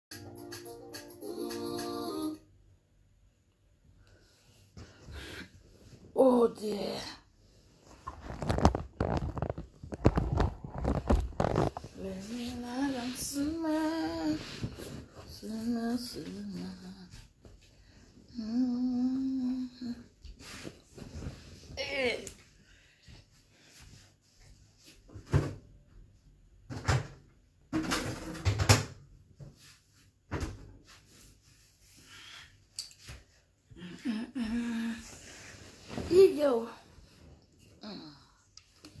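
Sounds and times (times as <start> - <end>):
music: 0.1 - 2.4.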